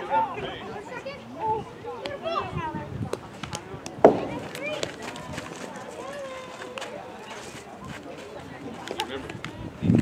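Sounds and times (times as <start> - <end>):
baseball hitting chain-link fence: 4.0 - 5.0.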